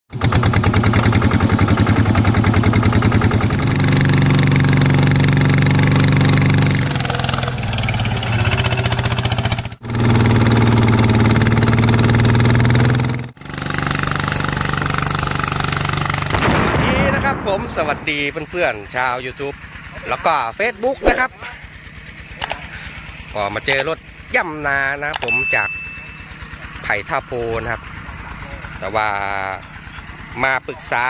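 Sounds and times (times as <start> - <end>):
diesel tractor engine chugging: 0.1 - 31.0.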